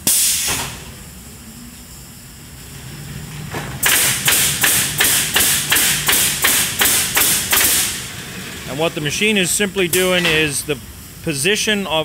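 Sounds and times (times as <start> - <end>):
nail guns firing: 3.8 - 8.0.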